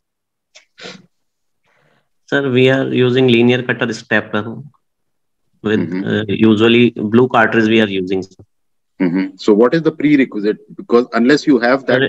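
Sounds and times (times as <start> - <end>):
faint breath: 1.6 - 2.2.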